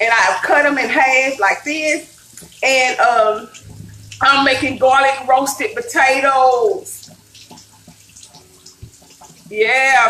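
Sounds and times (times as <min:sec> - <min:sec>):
running water at sink: 0:00.0 - 0:10.0
soft low thump: 0:03.6 - 0:06.2.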